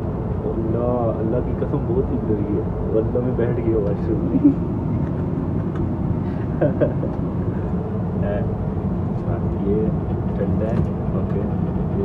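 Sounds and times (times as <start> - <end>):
airliner cabin roar: 0.0 - 12.0.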